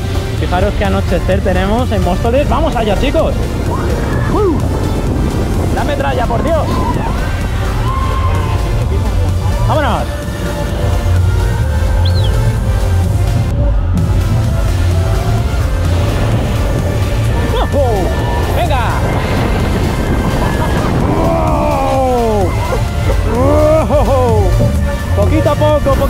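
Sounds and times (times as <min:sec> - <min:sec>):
fairground music: 0:00.0 - 0:26.0
wind buffeting microphone: 0:00.0 - 0:26.0
riders crying out: 0:03.6 - 0:05.1, 0:06.3 - 0:08.9, 0:17.2 - 0:25.2.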